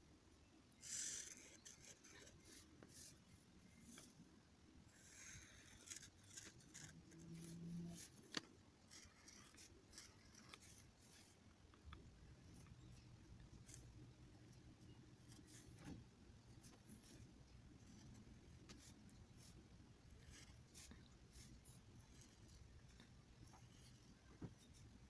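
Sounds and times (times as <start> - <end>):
marker scratching on paper: 0.8 - 3.2, 4.9 - 11.4, 12.4 - 25.0.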